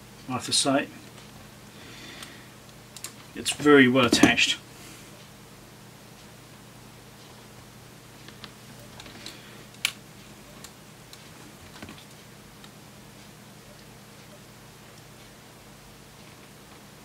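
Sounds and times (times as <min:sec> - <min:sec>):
faint plastic clicks and cracks: 0:02.2 - 0:03.6, 0:08.2 - 0:10.0.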